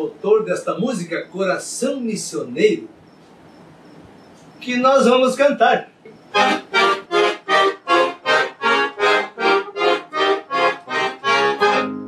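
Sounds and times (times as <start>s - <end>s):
accordion playing chords: 6.3s - 12.0s.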